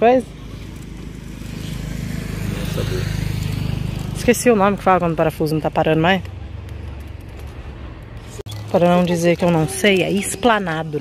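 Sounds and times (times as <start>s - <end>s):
vehicle engine passing: 0.2s - 9.6s.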